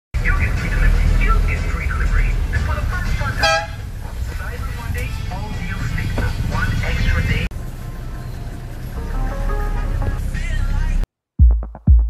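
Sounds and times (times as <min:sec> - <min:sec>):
road noise: 0:00.1 - 0:11.1
vehicle engines rumbling: 0:00.2 - 0:11.1
short car horn toot: 0:03.4 - 0:03.8.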